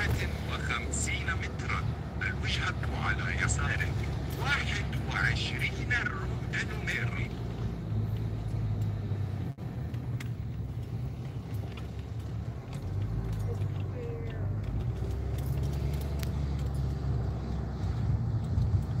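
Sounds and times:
car engine and tyre hum: 0.0 - 19.0
small clicks and rattles: 9.8 - 19.0.

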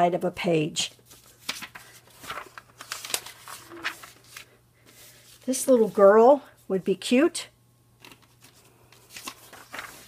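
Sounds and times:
magazine pages rustling: 1.0 - 6.2, 8.0 - 10.0.

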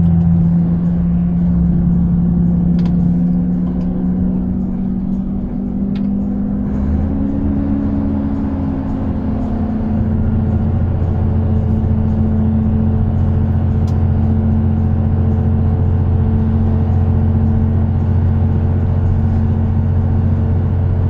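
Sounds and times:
truck diesel engine droning: 0.0 - 21.0.

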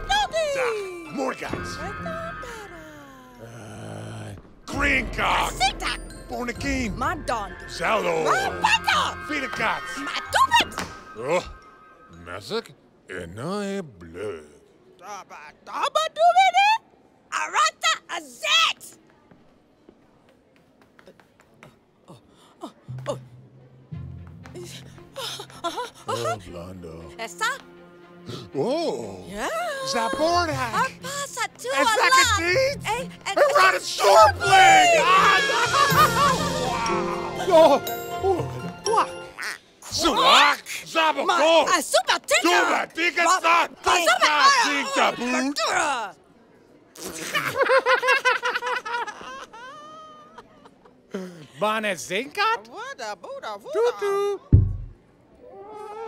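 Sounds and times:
cartoon gibberish vocal exclamations: 0.0 - 3.0
background music with held notes: 4.7 - 12.1, 22.9 - 31.3, 32.0 - 39.4
music cue: 34.8 - 39.4
short thunk: 54.6 - 55.0.

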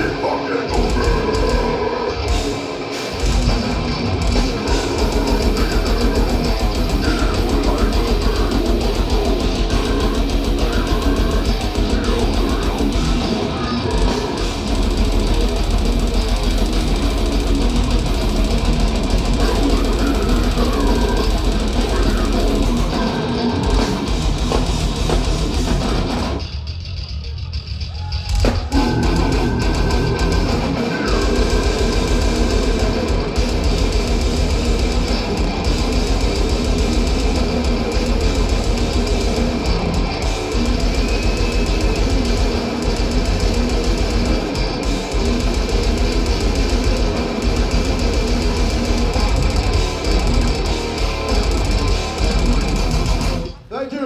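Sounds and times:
growled vocals: 0.0 - 2.4, 19.4 - 24.1
death metal band playing live: 0.0 - 54.0.

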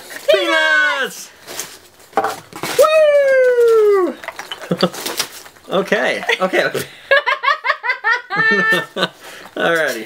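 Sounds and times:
high-pitched squeal of excitement: 2.7 - 4.2.

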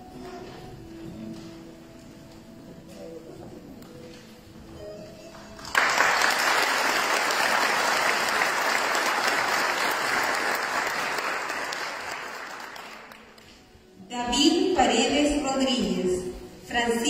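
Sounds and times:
audience applause: 5.6 - 13.4.

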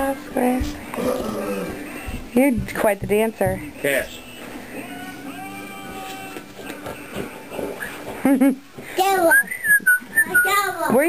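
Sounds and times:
wavering whistled tone: 9.2 - 10.7
high-pitched voice sounds: 10.2 - 11.0.

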